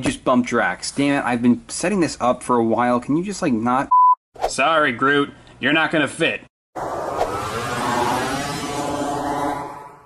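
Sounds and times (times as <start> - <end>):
spaceship engine rush: 6.8 - 10.0.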